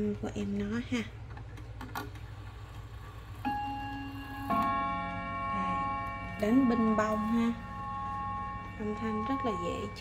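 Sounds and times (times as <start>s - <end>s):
clock gong strikes: 3.5s - 10.0s.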